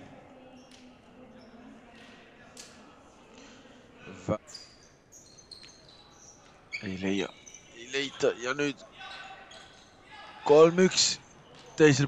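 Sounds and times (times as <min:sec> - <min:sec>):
indoor hall ambience: 0:00.0 - 0:12.0.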